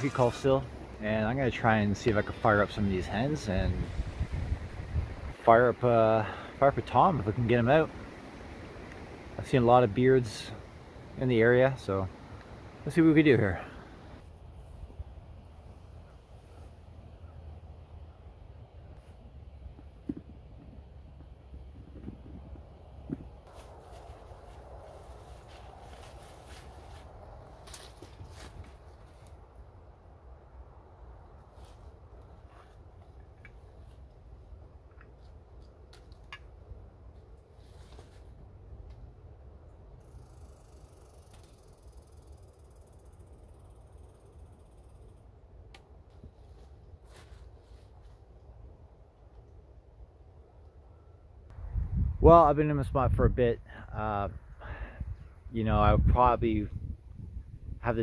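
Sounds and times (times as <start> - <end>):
wind rumble on microphone: 2.2 - 5.8, 19.2 - 29.4, 51.5 - 53.6, 54.2 - 58.0
rustles: 18.8 - 29.9, 31.2 - 39.2, 40.0 - 49.7.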